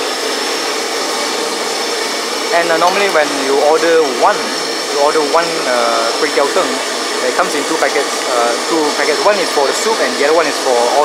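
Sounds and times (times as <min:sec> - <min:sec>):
faint high whine: 0:00.0 - 0:11.0
gas burner rushing: 0:00.0 - 0:11.0.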